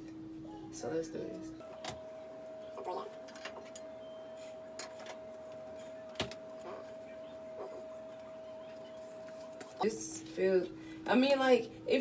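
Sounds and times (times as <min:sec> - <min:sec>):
faint steady tone: 0:01.6 - 0:11.0.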